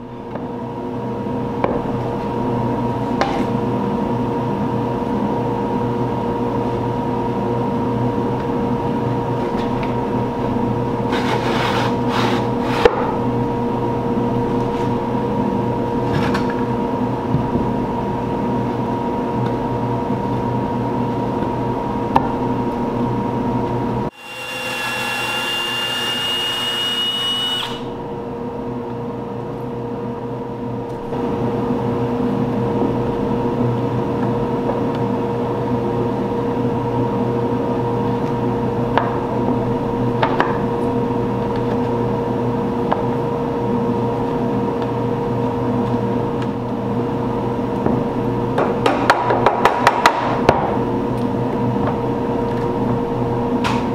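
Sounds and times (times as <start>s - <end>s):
electric motor humming: 24.1s - 28.0s
high motor whine: 24.1s - 28.5s.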